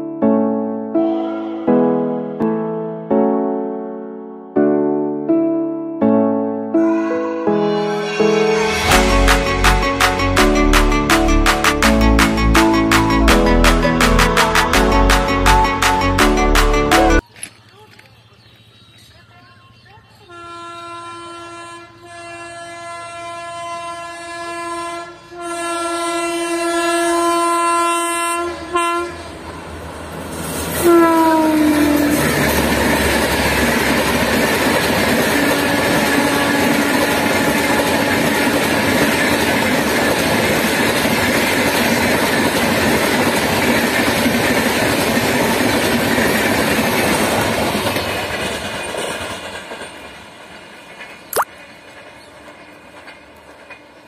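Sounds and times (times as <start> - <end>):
locomotive horn blasts: 20.3 - 29.3, 30.8 - 32.2, 35.4 - 38.3
train coaches clattering over rails: 32.1 - 54.0.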